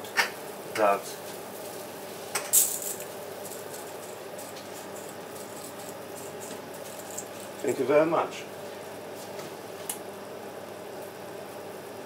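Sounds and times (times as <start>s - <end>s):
pot boiling: 0.0s - 12.0s.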